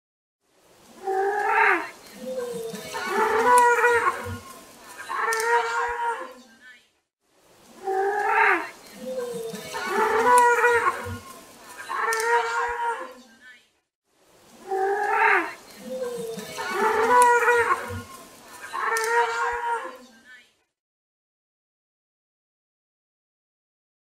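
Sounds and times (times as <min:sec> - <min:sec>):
pelican hoarse calls: 0:01.0 - 0:06.3, 0:07.8 - 0:13.1, 0:14.7 - 0:19.9.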